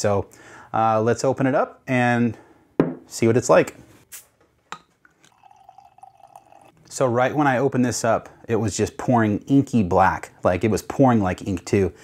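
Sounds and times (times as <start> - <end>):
beer pouring into a glass: 5.2 - 6.8.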